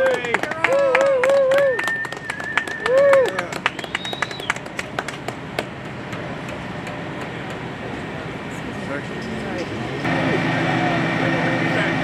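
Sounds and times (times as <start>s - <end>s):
crowd clapping: 0.0s - 7.6s
outdoor street noise: 0.0s - 12.0s
steady high tone: 10.0s - 12.0s.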